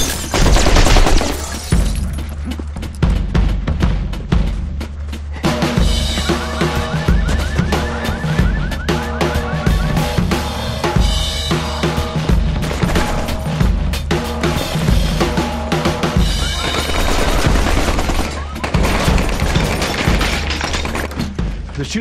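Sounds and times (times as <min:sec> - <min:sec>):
automatic gunfire: 0:00.3 - 0:01.4, 0:16.6 - 0:21.1
drum-heavy music: 0:00.3 - 0:22.0
fast repeating chirp: 0:06.3 - 0:10.4.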